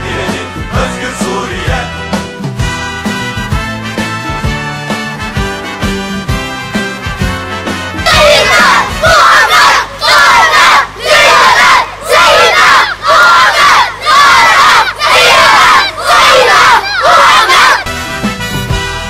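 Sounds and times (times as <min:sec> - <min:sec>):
boys chanting in unison: 0:08.1 - 0:17.8.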